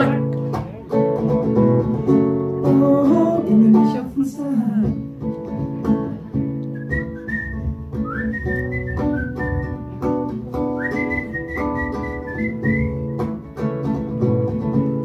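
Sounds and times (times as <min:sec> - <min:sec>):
strummed acoustic guitar: 0:00.0 - 0:15.0
man whistling a melody: 0:06.6 - 0:10.0, 0:10.6 - 0:13.4.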